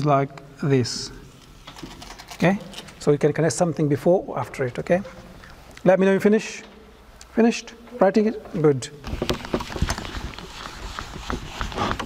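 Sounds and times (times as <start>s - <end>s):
eraser rubbing on whiteboard: 10.0s - 12.0s.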